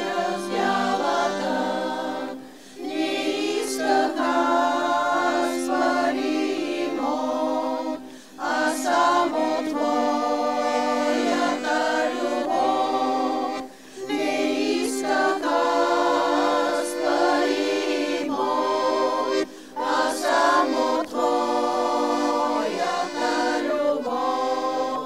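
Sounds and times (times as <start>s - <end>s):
women's choir singing in harmony: 0.0s - 25.0s.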